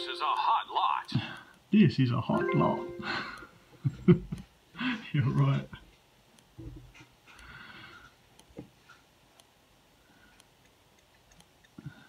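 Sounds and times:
faint ticking: 0.0 - 12.0.

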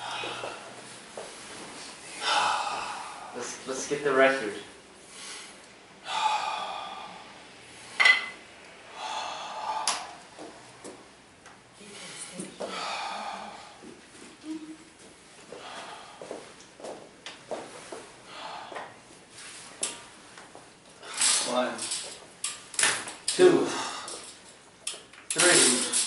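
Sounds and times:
man breathing forcefully: 0.0 - 0.8, 2.0 - 3.4, 5.0 - 8.0, 8.8 - 10.9, 11.8 - 13.9, 15.5 - 16.6, 18.2 - 19.0, 23.6 - 24.4.

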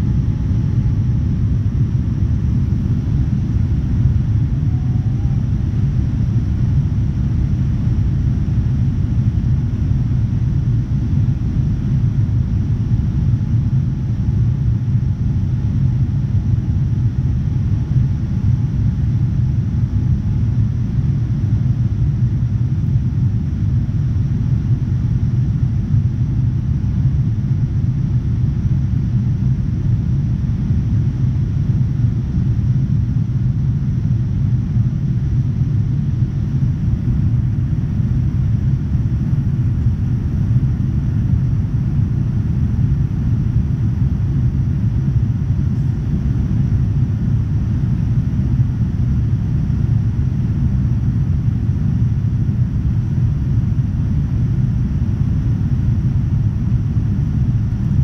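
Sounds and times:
airflow: 0.0 - 7.9
airplane engines rumbling: 0.0 - 58.0.

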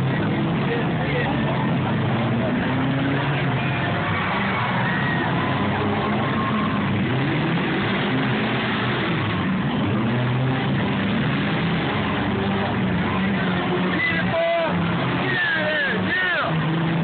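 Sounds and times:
car engines revving: 0.0 - 17.0.

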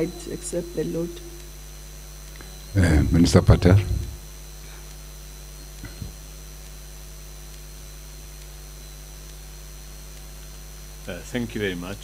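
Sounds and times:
electrical mains hum: 0.0 - 12.0
faint high whine: 0.0 - 12.0.

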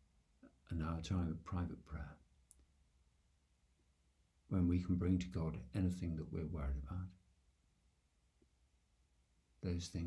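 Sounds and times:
faint click: 2.4 - 2.7.

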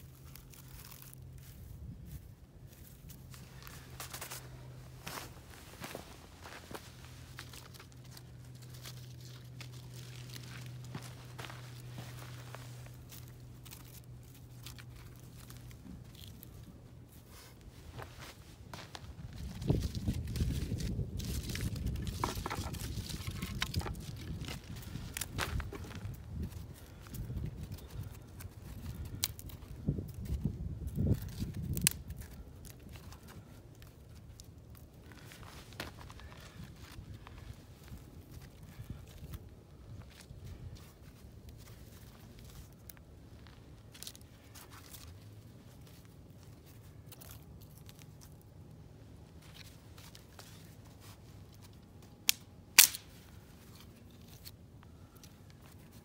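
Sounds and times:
faint low hum: 0.0 - 56.0
twigs crunching: 0.0 - 56.0
footsteps on dry ground: 0.6 - 28.2, 35.0 - 46.6.

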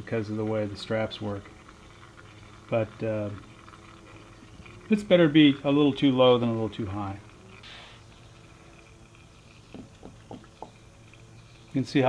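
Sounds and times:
oil glugging from jug: 0.0 - 11.9.

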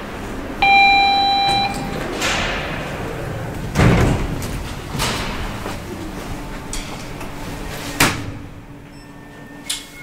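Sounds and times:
elevator doors sliding open: 0.2 - 10.0
elevator electronic tone: 0.6 - 2.2, 8.8 - 10.0.

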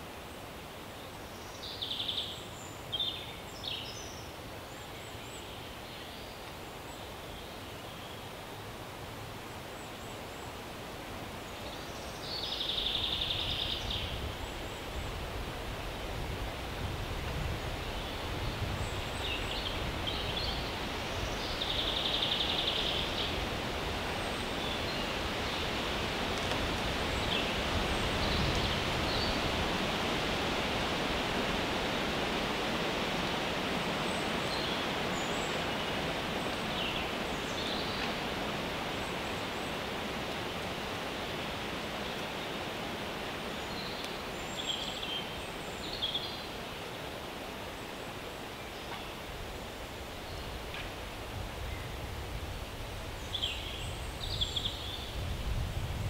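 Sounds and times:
wind rustling leaves: 0.0 - 56.0.

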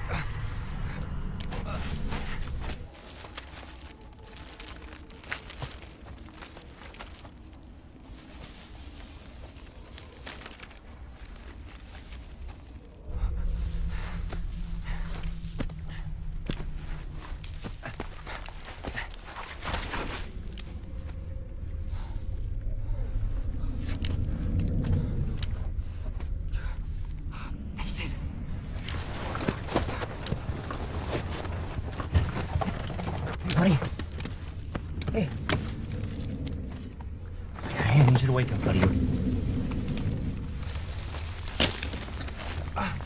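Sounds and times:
low droning rumble: 0.0 - 43.0
twigs snapping and crackling: 1.3 - 13.0, 14.3 - 21.2, 28.8 - 43.0
footsteps on forest floor: 1.4 - 13.1, 13.7 - 22.2.

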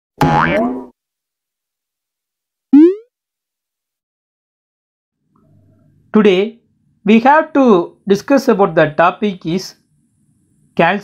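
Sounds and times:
cartoon upward gliding effect: 2.8 - 3.1.

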